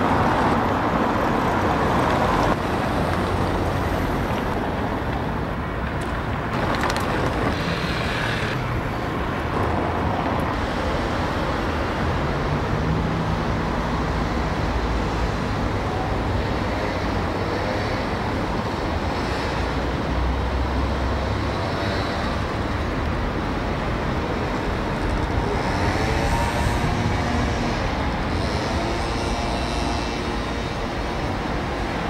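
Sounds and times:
street traffic hiss and rumble: 0.0s - 32.0s.

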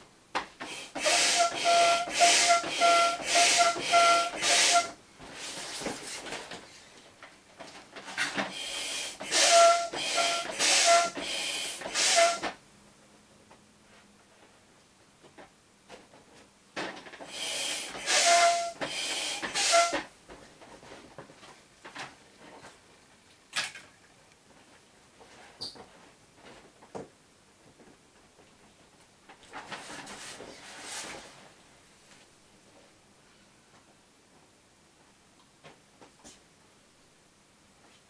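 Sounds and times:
hand air pump hissing: 0.6s - 5.0s, 8.5s - 12.5s, 17.3s - 20.0s.

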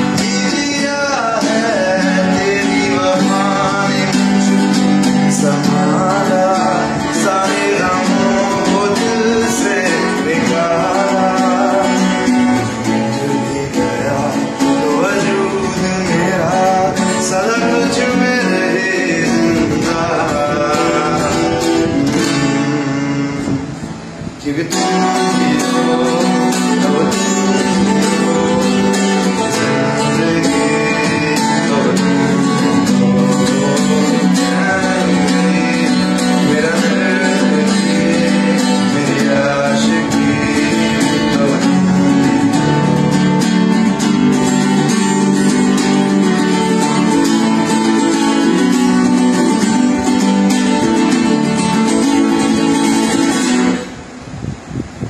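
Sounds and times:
man singing: 0.0s - 53.9s
acoustic guitar strumming: 0.0s - 55.0s.

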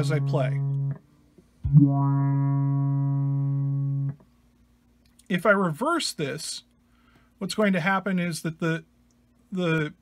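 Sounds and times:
filtered electric guitar note: 0.0s - 1.0s, 1.6s - 4.2s.

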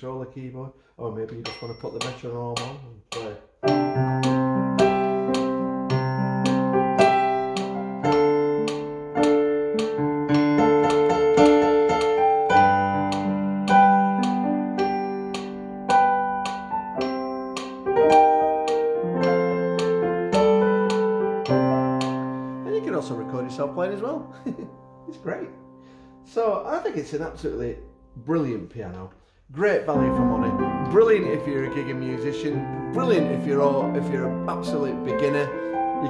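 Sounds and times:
piano chords over bass notes: 3.6s - 28.7s, 29.6s - 36.0s.

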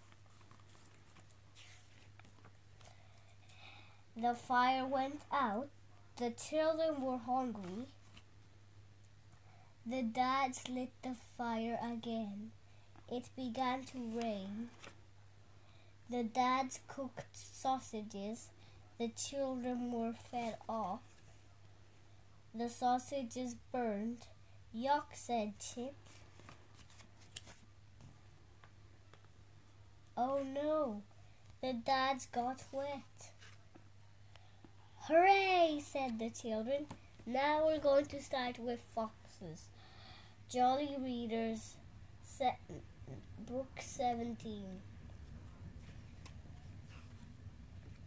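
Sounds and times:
book page turning: 0.0s - 3.0s, 14.0s - 15.0s, 26.0s - 28.1s, 33.3s - 33.8s
low steady hum: 0.0s - 48.0s.

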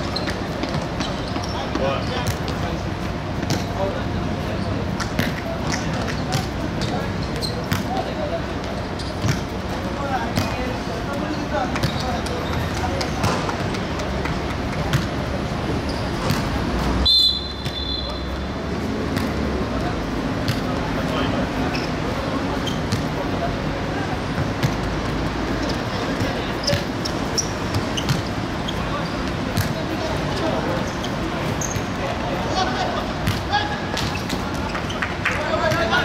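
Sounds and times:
football kicked and bouncing: 3.4s - 3.8s, 5.0s - 7.0s, 8.6s - 9.5s, 10.2s - 10.7s, 11.7s - 15.2s, 16.1s - 16.6s, 19.1s - 19.4s, 20.4s - 21.1s, 22.9s - 23.1s, 24.4s - 26.9s, 29.2s - 29.8s, 33.2s - 34.6s.

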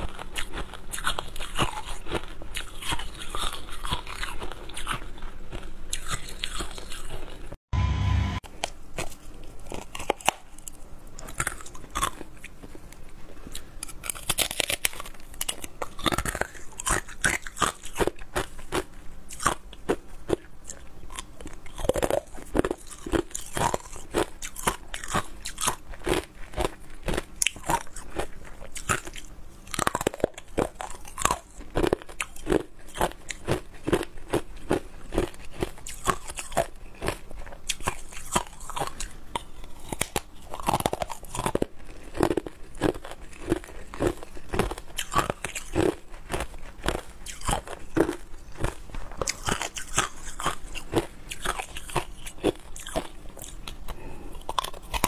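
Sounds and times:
ice crunching between teeth: 0.0s - 7.6s, 9.0s - 55.0s.

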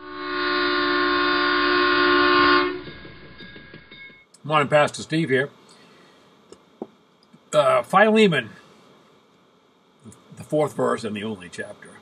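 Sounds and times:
loud sustained horn-like chord: 0.0s - 3.2s.

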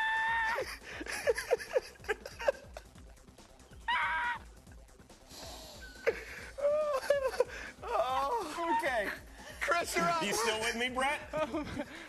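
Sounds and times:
men laughing uncontrollably: 0.0s - 3.3s, 5.8s - 12.0s.

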